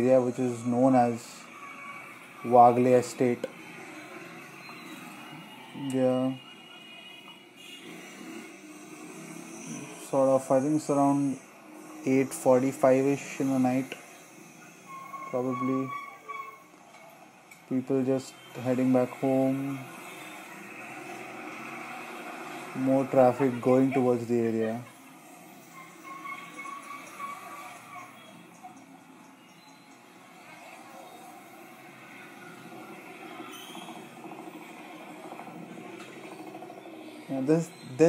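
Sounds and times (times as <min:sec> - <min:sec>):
faint street traffic: 0:00.0 - 0:38.0.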